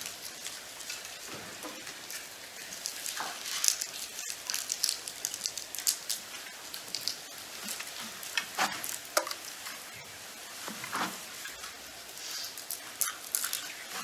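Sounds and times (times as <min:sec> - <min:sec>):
rustling: 0:00.0 - 0:14.0.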